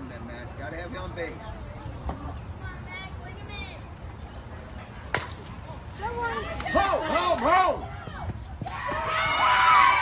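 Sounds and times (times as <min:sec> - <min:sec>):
bat hitting ball crack: 0:05.1 - 0:05.4.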